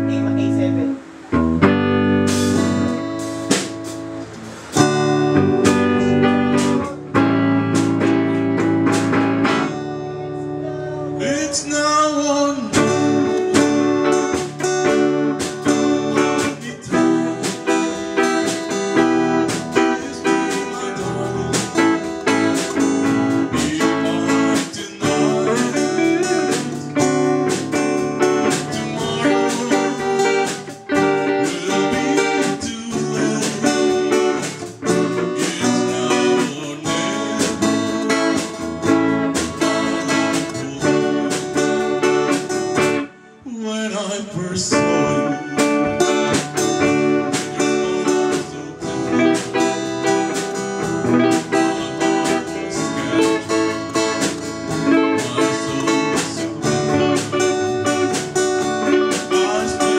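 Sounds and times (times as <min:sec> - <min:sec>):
acoustic guitar strumming: 0:00.0 - 0:59.9
drum kit and cymbals: 0:01.0 - 0:10.1, 0:12.6 - 0:43.1, 0:44.9 - 0:59.9
person singing: 0:04.8 - 0:59.9.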